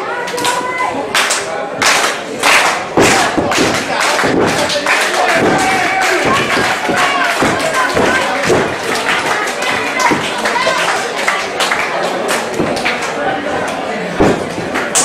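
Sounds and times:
crowd voices: 0.0 - 15.0
scattered clapping: 0.2 - 15.0
bodies thudding on ring mat: 14.2 - 14.7.

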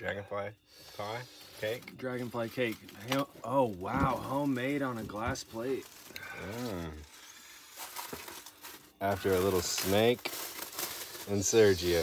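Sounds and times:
plastic bag crinkling: 1.3 - 12.0.

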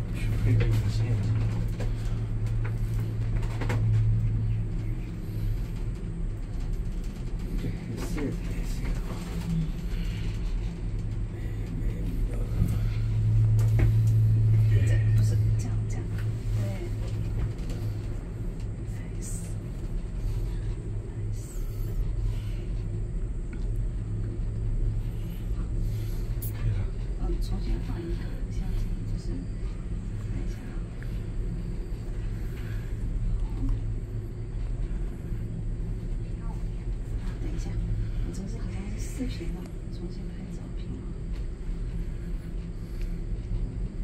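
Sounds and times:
cable car cabin rumble: 0.0 - 44.0.

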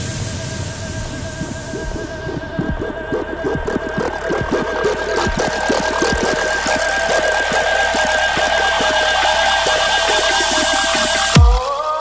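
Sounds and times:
noise hiss: 0.0 - 2.3
dubstep synth tones: 0.0 - 12.0.

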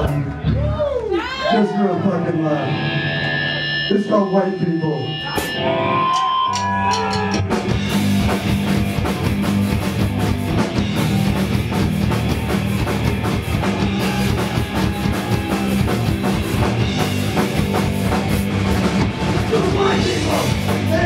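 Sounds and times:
electric bass: 0.0 - 21.0
electric guitar: 2.4 - 21.0
drums and cymbals: 5.2 - 21.0.

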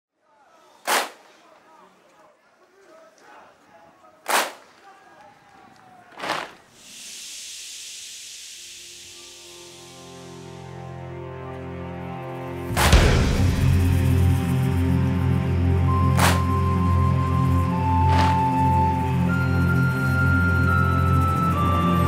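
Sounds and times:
sharp cracks: 0.7 - 2.3, 3.1 - 6.8, 12.7 - 15.0, 16.1 - 16.6
steady high hiss: 6.6 - 11.6
held music chords: 9.2 - 22.0.

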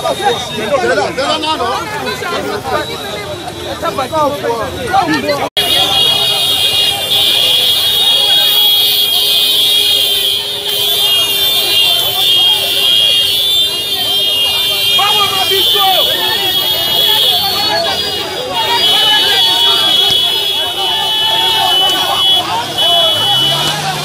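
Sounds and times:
protest crowd voices: 0.0 - 24.0.

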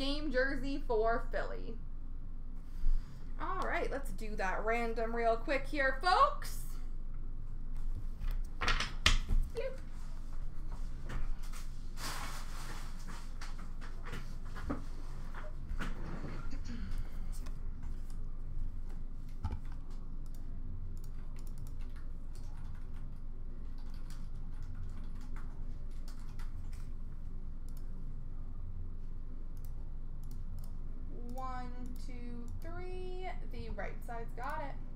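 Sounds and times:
steady low hum: 0.0 - 34.9
computer keyboard typing: 19.4 - 27.0.

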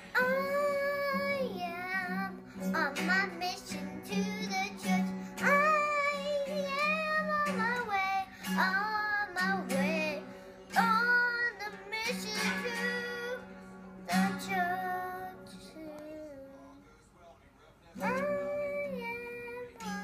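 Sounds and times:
acoustic guitar strumming: 0.0 - 16.3, 18.0 - 20.0
girl singing: 0.0 - 16.8, 18.0 - 20.0.

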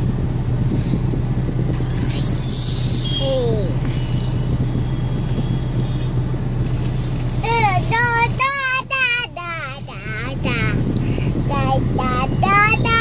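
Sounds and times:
car cabin low rumble: 0.0 - 13.0.

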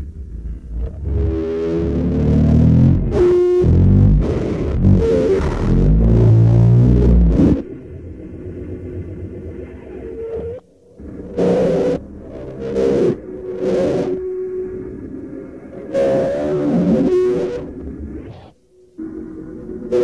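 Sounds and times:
distorted low rumble: 0.0 - 20.0
steady droning: 0.0 - 20.0.

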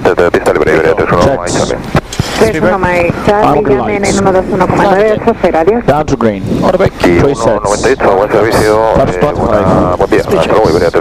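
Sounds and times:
low background rumble: 0.0 - 11.0
person talking: 0.0 - 11.0.

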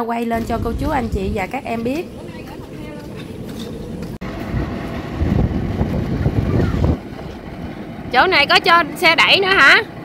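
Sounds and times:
cart wheels rattling over asphalt: 0.4 - 10.0.

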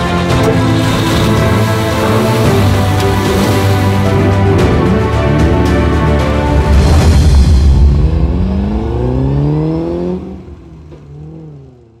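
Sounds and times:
racing car engine accelerating: 0.2 - 12.0.

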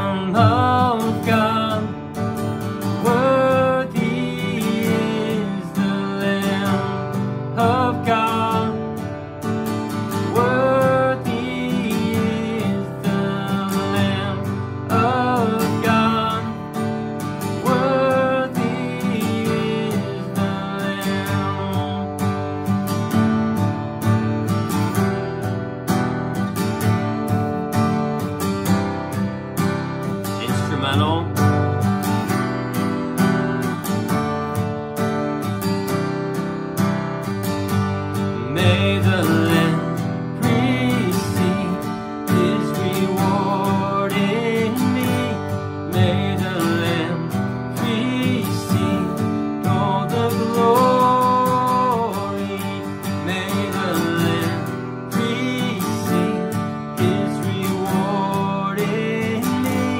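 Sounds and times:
man singing: 0.0 - 9.2, 9.8 - 22.8, 30.2 - 31.7, 38.2 - 59.9
acoustic guitar strumming: 0.0 - 59.9.

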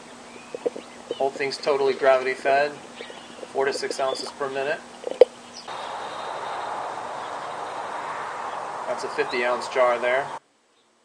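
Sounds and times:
flame burning with rushing hiss: 4.8 - 10.4.

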